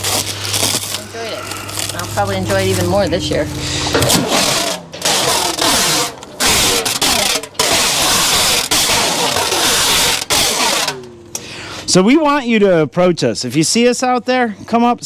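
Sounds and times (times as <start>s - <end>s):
stretch film wrapping hiss: 0.0s - 2.0s.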